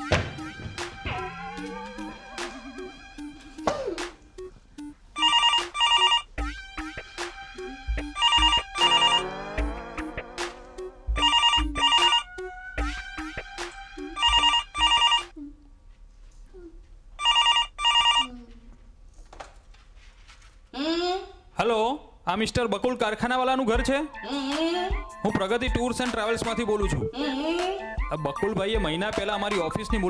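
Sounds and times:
comic music with plucked beat: 0:00.0 - 0:15.3, 0:23.8 - 0:30.0
telephone ringing: 0:04.4 - 0:06.4, 0:08.0 - 0:09.4, 0:11.2 - 0:12.4, 0:14.0 - 0:15.3, 0:17.2 - 0:18.3.

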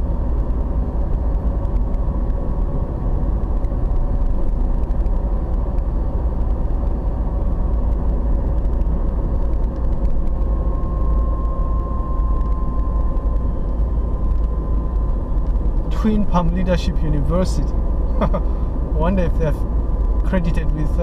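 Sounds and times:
tyre and engine rumble: 0:00.0 - 0:21.0.

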